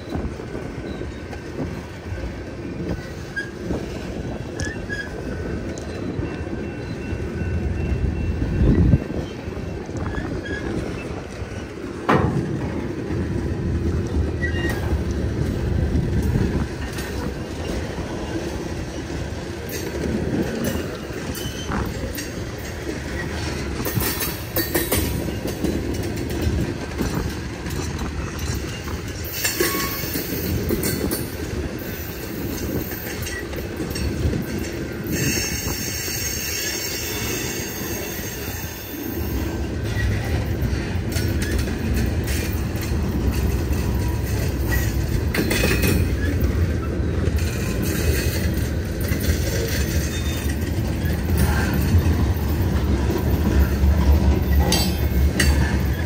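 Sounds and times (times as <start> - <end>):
freight train wheels rumbling on rail: 0.0 - 56.0
wheels clattering over rail joints: 0.0 - 56.0
high wheel squeals: 4.4 - 11.9, 14.4 - 15.0, 27.9 - 30.6, 35.0 - 42.6, 43.3 - 56.0.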